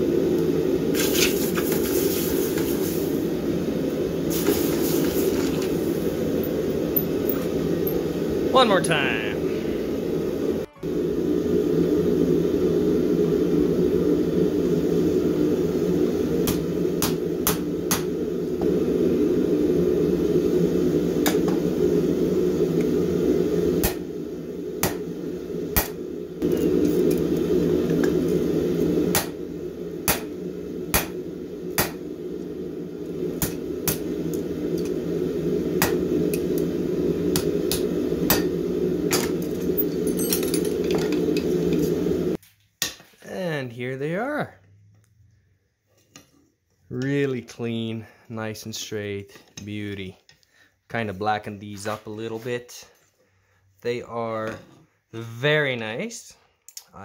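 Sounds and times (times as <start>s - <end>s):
low roar of forge: 0.0s - 42.4s.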